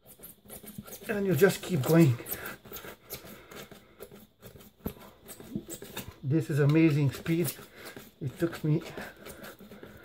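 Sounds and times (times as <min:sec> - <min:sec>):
knife blade cutting rubber mat: 0:00.0 - 0:10.0.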